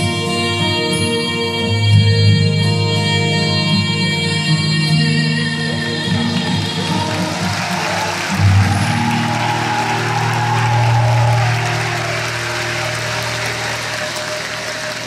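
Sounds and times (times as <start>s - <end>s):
audience applauding: 5.7s - 15.0s.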